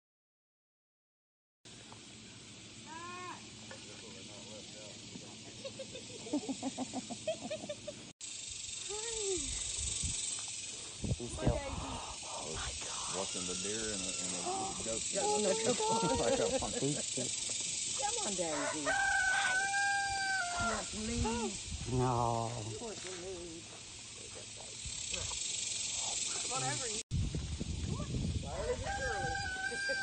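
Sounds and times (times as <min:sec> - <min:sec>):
steady high hiss: 0:01.7 - 0:29.2
insects buzzing: 0:01.7 - 0:30.0
person's voice: 0:11.3 - 0:16.9.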